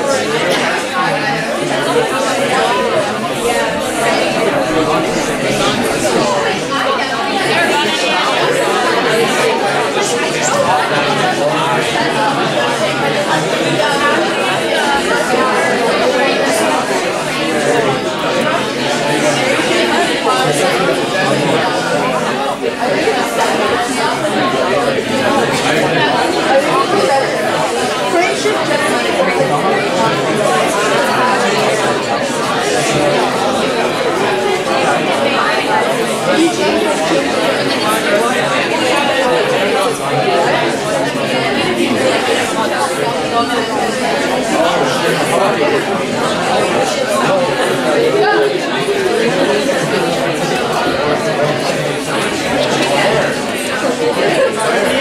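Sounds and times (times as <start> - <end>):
babble of many voices: 0.0 - 55.0.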